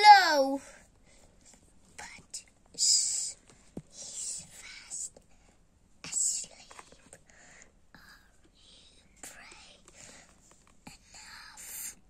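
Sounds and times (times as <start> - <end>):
child whispering: 0.0 - 0.8, 2.0 - 5.2, 6.0 - 7.2, 7.9 - 9.9, 10.9 - 12.0.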